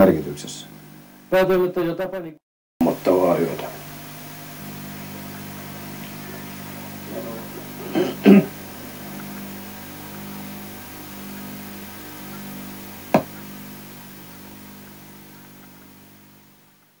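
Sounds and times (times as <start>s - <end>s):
electrical hum with hiss: 0.0s - 17.0s.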